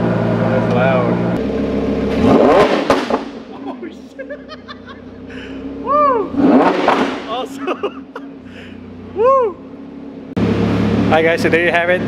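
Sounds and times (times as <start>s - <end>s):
sports car engine idling and revving: 0.0s - 12.0s
voices and laughter: 3.5s - 6.3s, 7.4s - 8.5s.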